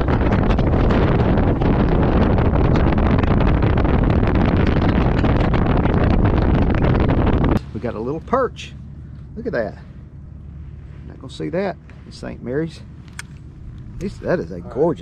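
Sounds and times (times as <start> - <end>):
boat engine and hull noise: 0.0 - 15.0
wind rushing on microphone: 0.0 - 15.0.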